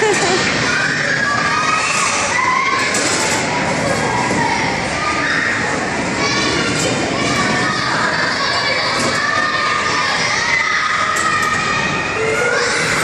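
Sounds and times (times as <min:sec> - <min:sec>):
children shouting and playing: 0:00.0 - 0:13.0.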